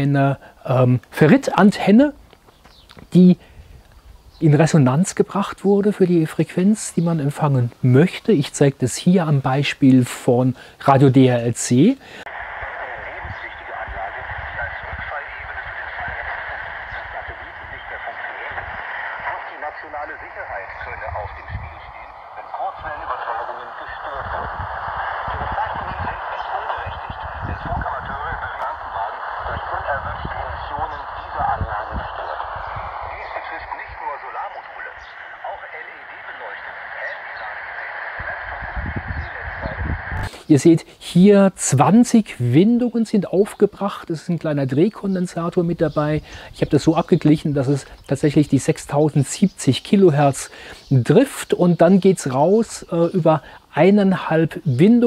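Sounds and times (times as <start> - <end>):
voice over shortwave radio: 10.1 - 41.2.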